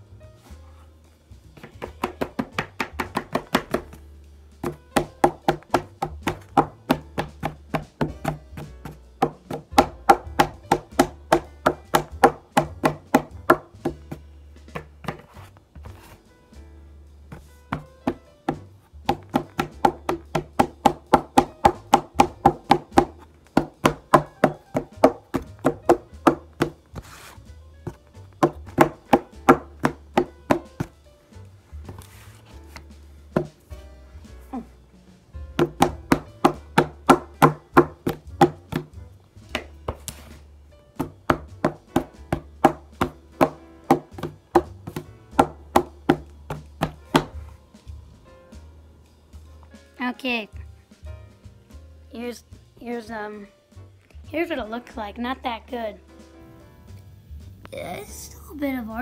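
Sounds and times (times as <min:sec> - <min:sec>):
paintbrush tapping: 0:17.3 - 0:31.0, 0:35.6 - 0:40.4.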